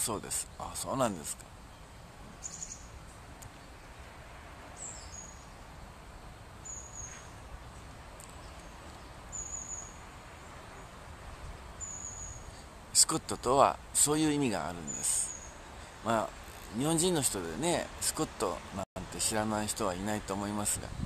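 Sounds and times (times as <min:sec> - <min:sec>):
faint background hiss: 0:00.0 - 0:21.0
small bird chirping: 0:01.7 - 0:03.9, 0:04.8 - 0:05.8, 0:06.6 - 0:12.7, 0:14.8 - 0:16.8.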